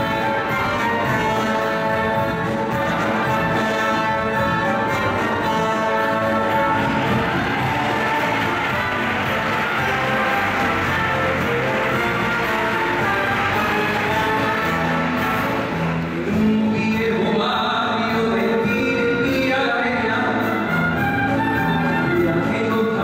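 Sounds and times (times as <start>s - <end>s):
orchestra playing: 0.0s - 18.4s, 19.3s - 23.0s
man singing: 0.0s - 21.1s, 21.9s - 23.0s.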